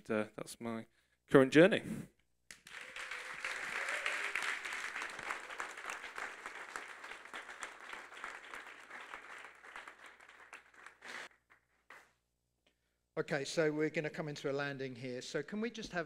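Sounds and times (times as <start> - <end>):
congregation applauding: 2.5 - 12.0.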